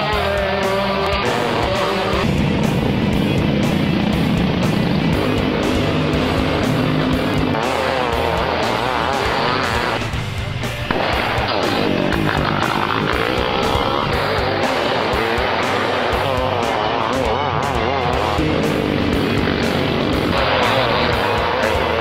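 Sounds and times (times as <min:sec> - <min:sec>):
music playing: 0:00.0 - 0:22.0
race car engines revving: 0:00.0 - 0:22.0.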